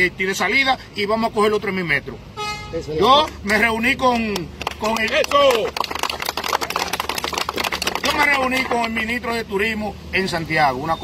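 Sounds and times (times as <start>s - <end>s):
people clapping: 3.2s - 9.0s.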